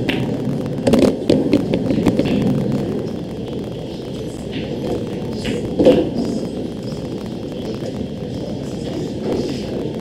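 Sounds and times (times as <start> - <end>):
pool balls clicking: 0.0 - 10.0
steady low hum: 0.0 - 10.0.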